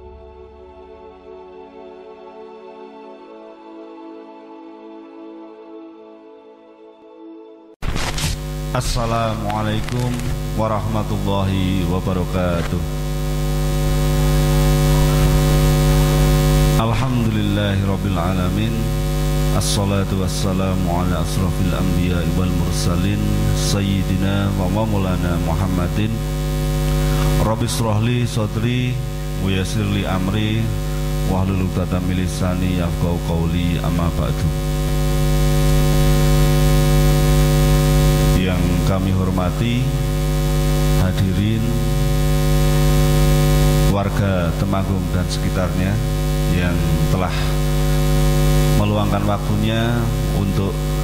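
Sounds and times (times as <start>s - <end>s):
electrical mains hum: 7.8s - 51.0s
man speaking over loudspeakers: 8.7s - 12.9s, 16.8s - 26.2s, 27.4s - 34.6s, 38.3s - 40.2s, 41.0s - 42.2s, 43.9s - 47.6s, 48.7s - 51.0s.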